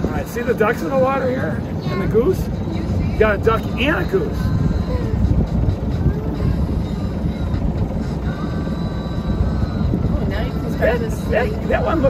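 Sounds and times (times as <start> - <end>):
low rumble aboard sailboat: 0.0 - 12.0.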